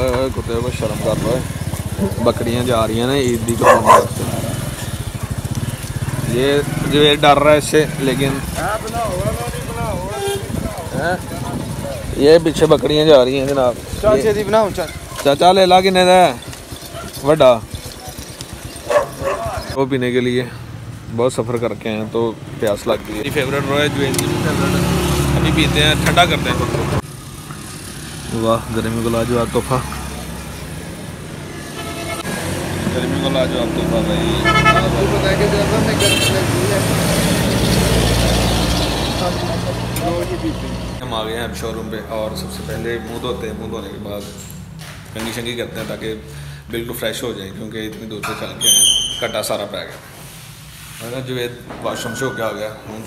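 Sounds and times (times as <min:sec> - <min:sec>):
motorcycle engine running: 0:00.0 - 0:19.8.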